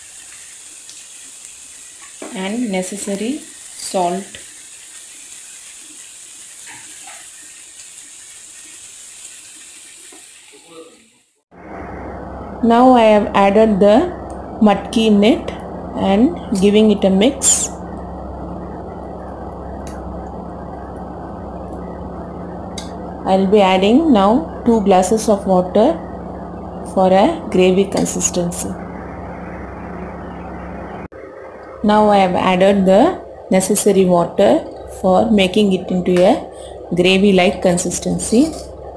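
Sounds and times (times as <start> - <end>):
spices sizzling in oil: 0.0 - 11.4
steady hiss: 0.0 - 11.4
woman speaking: 2.3 - 4.4, 12.6 - 17.8, 23.2 - 26.0, 26.9 - 28.8, 31.8 - 38.7
low hum: 11.5 - 38.9.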